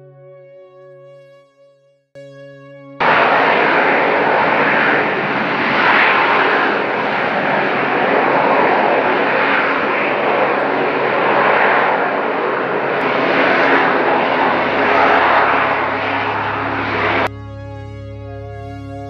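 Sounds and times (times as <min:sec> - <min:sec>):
jet hovering: 0:02.9 - 0:17.5.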